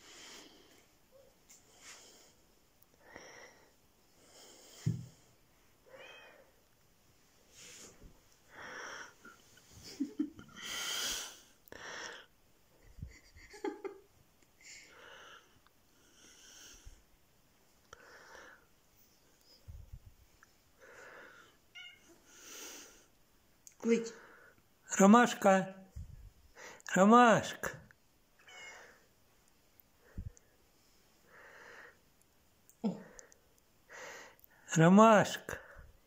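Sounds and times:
cat meowing faintly: 21.7s - 22.2s, 28.4s - 29.0s.

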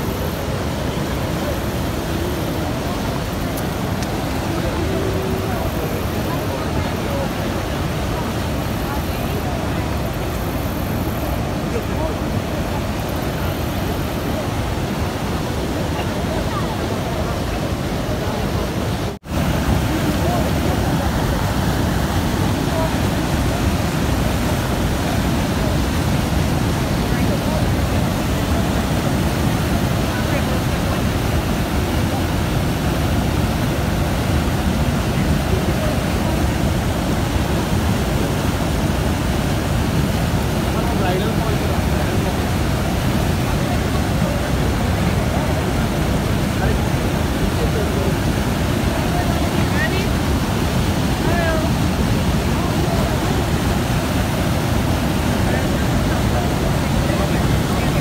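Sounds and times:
rushing water of rapids and falls: 0.0s - 58.0s.

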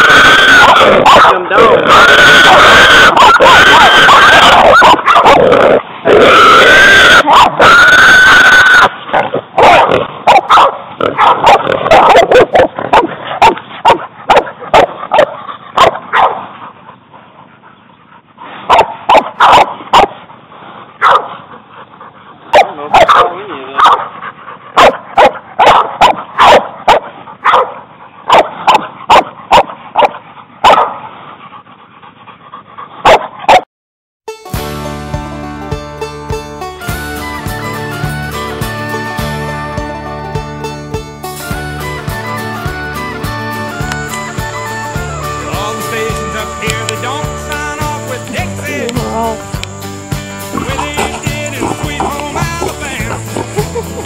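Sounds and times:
dogs barking and yelping: 0.0s - 33.6s, 41.4s - 54.0s.

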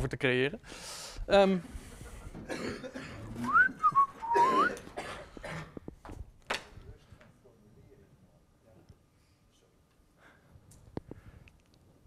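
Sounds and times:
person whistling: 3.4s - 4.8s.

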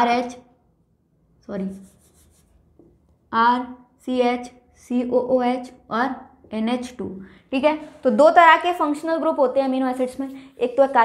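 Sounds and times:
woman speaking: 3.3s - 11.0s.

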